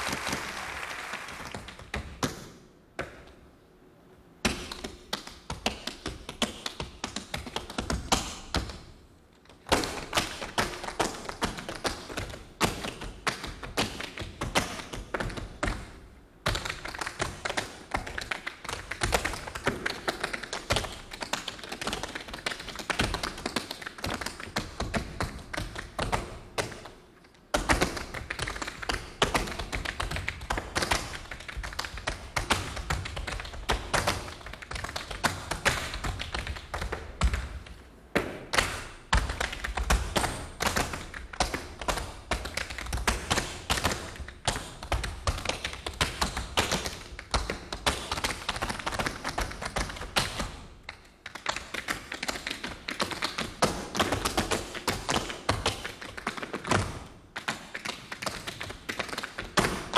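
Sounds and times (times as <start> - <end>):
tap dancing shoes on stage: 0.0 - 3.4, 4.4 - 59.9.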